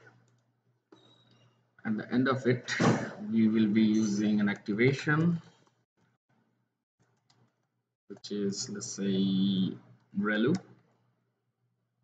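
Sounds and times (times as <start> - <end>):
man speaking: 1.8 - 5.5, 8.1 - 10.6.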